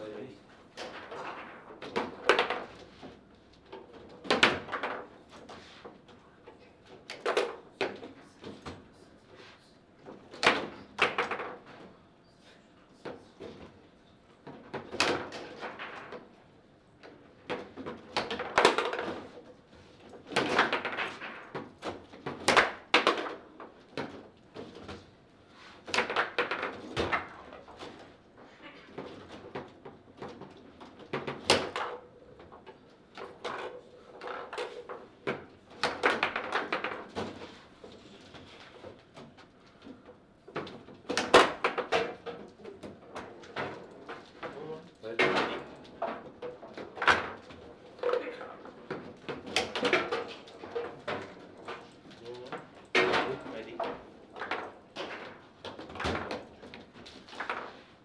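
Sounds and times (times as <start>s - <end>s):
table football clacks and knocks: 0.6s - 8.9s, 10.0s - 12.0s, 13.0s - 58.0s.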